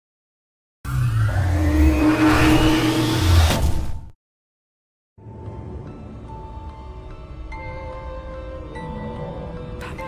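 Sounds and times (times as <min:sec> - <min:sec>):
engine-like rising whine: 0:00.9 - 0:03.6.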